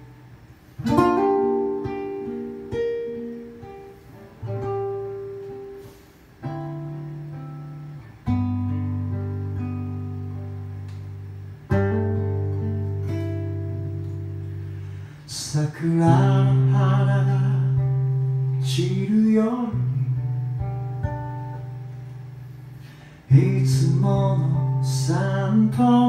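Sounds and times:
acoustic guitar chords ringing: 0:00.0 - 0:26.0.

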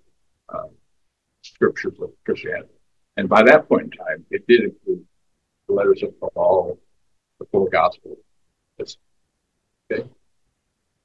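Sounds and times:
man speaking: 0:00.5 - 0:00.8, 0:01.4 - 0:05.1, 0:05.7 - 0:06.8, 0:07.4 - 0:09.0, 0:09.9 - 0:10.2.

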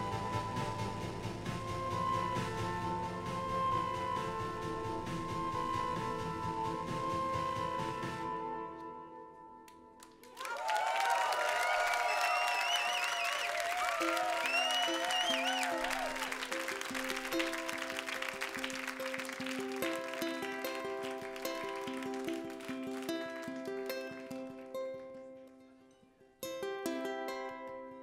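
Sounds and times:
whistles from audience: 0:00.0 - 0:09.0, 0:10.4 - 0:23.4
song ending: 0:00.0 - 0:09.2, 0:12.6 - 0:24.6
ukulele picking notes: 0:00.0 - 0:10.0, 0:13.5 - 0:28.0
audience applause and cheers: 0:10.0 - 0:25.0.

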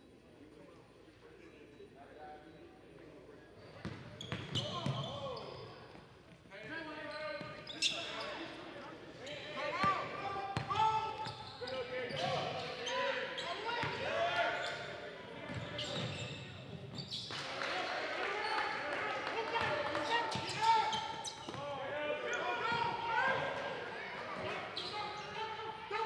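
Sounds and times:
voices and shouts echoing: 0:00.5 - 0:26.0
basketball bouncing on court: 0:10.6 - 0:11.4.

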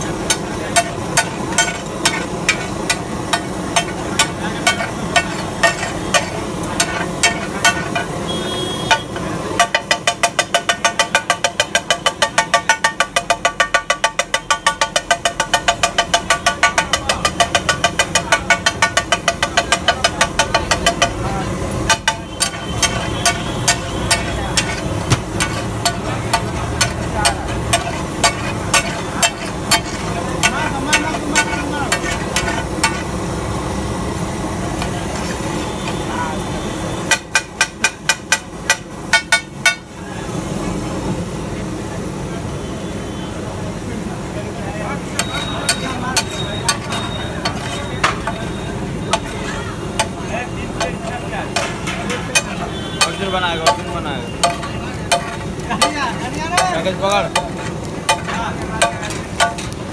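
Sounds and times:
metal spatula clattering on iron griddle: 0:00.1 - 0:08.2, 0:08.9 - 0:33.2, 0:37.1 - 0:39.8, 0:45.0 - 0:59.9.

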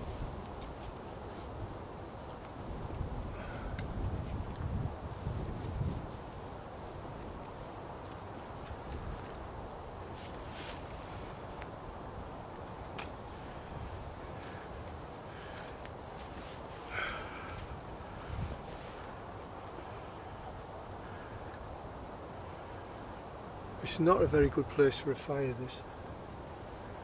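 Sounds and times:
wind noise: 0:00.0 - 0:22.5
cloth rustling: 0:10.1 - 0:11.4.

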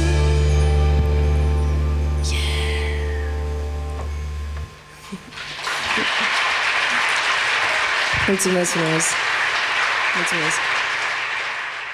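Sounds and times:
big band held chord: 0:00.0 - 0:02.5
audience applause: 0:05.2 - 0:11.9.

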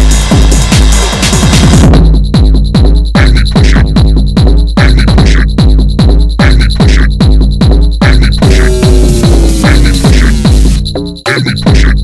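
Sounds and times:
electronic dance music: 0:00.0 - 0:01.9, 0:03.2 - 0:04.0, 0:04.8 - 0:07.1, 0:08.0 - 0:11.0
kick drum beat: 0:00.0 - 0:12.0
falling held synth tone: 0:08.4 - 0:10.8.

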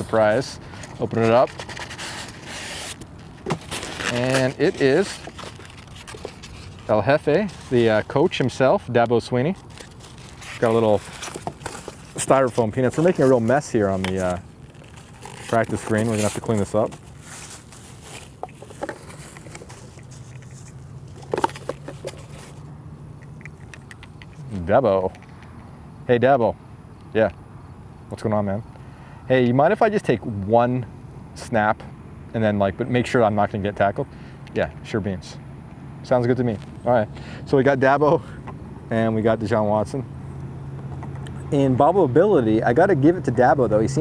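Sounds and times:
styrofoam scraping out of box: 0:00.8 - 0:07.8, 0:09.6 - 0:22.6
plastic wrap and foam crinkling: 0:01.0 - 0:08.2, 0:09.6 - 0:22.6.

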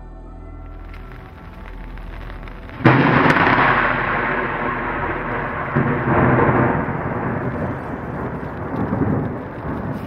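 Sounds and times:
rolling thunder rumble: 0:00.6 - 0:10.0
thunder crack: 0:00.7 - 0:10.0.

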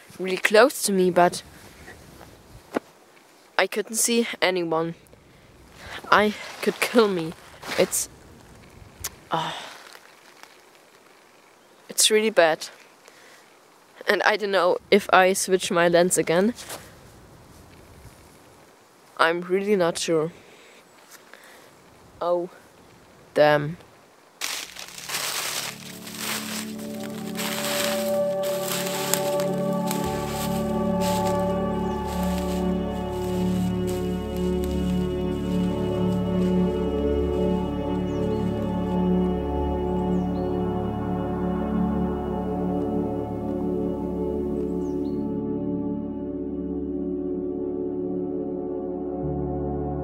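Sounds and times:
person speaking: 0:00.0 - 0:01.5, 0:03.6 - 0:05.0, 0:05.8 - 0:08.1, 0:24.9 - 0:36.9
footsteps through dry bracken: 0:00.0 - 0:03.5, 0:05.1 - 0:11.7, 0:24.4 - 0:39.7
outdoor background hiss: 0:00.0 - 0:49.1
ambient synth pad music: 0:24.6 - 0:50.0.

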